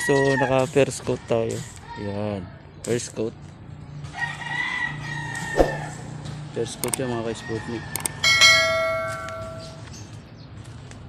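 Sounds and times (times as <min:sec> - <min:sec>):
mouse click: 0:08.0 - 0:08.2
bell ding: 0:08.0 - 0:09.9.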